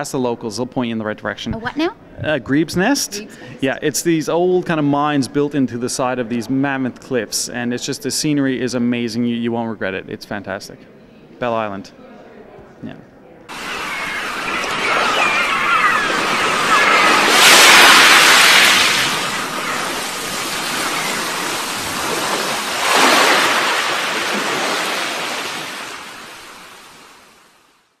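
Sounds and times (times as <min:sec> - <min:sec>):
ocean waves: 0:13.5 - 0:27.8.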